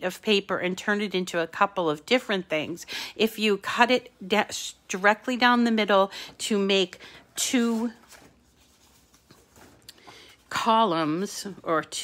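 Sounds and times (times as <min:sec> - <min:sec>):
cardstock rustling: 0:07.4 - 0:10.7.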